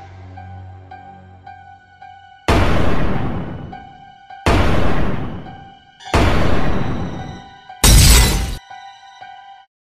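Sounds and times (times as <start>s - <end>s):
glass shattering: 7.8s - 8.6s.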